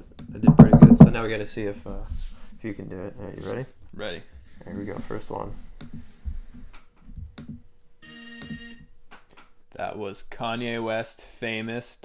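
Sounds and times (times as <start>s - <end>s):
soft low thumps: 0.2s - 2.6s, 3.8s - 7.8s.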